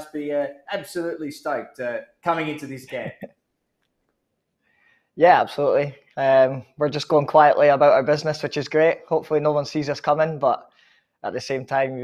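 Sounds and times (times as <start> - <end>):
man laughing: 2.6 - 3.4.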